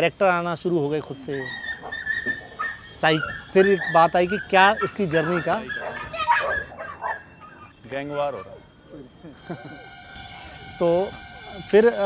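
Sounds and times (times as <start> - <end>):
dog barking: 1.4 - 8.7.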